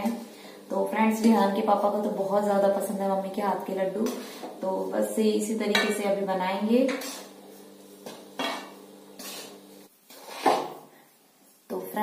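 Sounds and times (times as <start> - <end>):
faint steady hum: 0.0 - 9.9
spatula scraping steel pan: 6.8 - 10.7.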